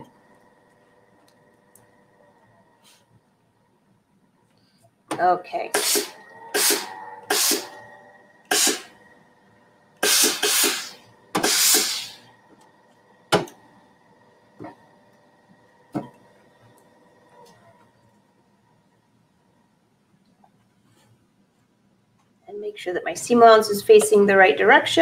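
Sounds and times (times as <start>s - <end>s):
steam iron hissing: 5.7s - 7.8s, 8.5s - 9.0s, 10.0s - 12.3s.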